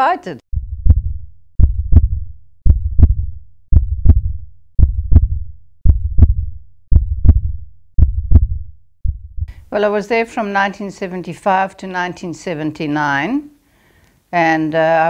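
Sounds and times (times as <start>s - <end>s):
heartbeat: 0.5s - 9.7s.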